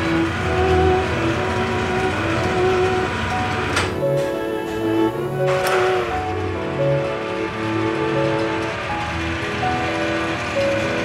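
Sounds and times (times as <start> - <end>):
sustained background music: 0.0 - 11.0.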